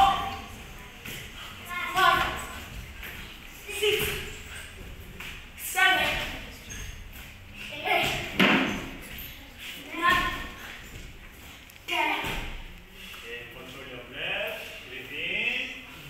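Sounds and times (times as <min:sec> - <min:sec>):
voices: 0:00.0 - 0:16.0.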